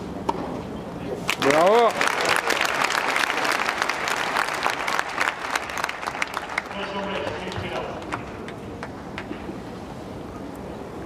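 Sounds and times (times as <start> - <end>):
crowd applause: 1.3 - 8.9.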